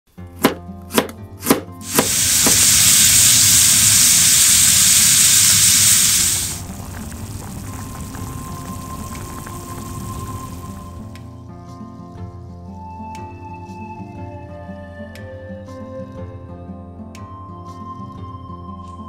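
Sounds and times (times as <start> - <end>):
knife chopping on plastic board: 0.4 - 1.8
meat sizzling in a frying pan: 1.8 - 11.1.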